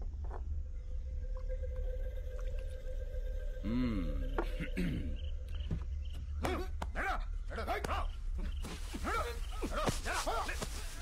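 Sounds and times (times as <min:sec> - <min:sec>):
low rumbling drone: 0:00.0 - 0:06.4.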